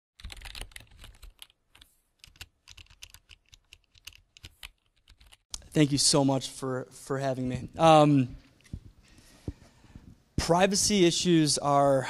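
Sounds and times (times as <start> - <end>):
typing on a keyboard: 0.2 - 5.5.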